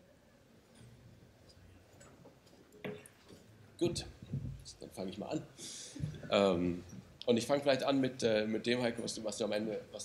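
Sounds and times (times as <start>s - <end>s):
faint clicks and rustles: 0.7s - 4.8s.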